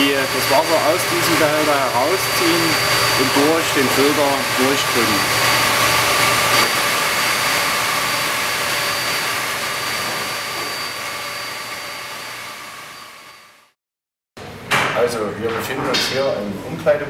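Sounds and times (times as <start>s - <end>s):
pump machine hum: 0.0s - 13.7s
high whining tones: 0.0s - 13.8s.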